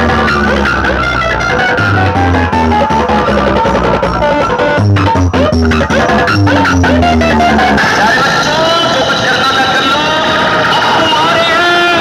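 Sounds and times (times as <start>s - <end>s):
loud music through speakers: 0.0s - 12.0s
vocal-like melody: 0.0s - 12.0s.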